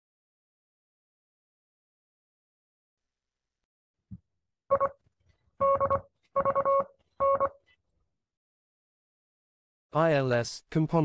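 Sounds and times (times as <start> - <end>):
morse code beeps: 4.7 - 5.0, 5.6 - 7.6.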